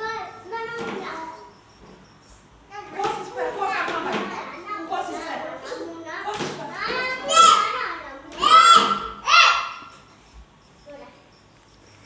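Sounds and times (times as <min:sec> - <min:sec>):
toddlers' voices playing: 0:02.7 - 0:10.1.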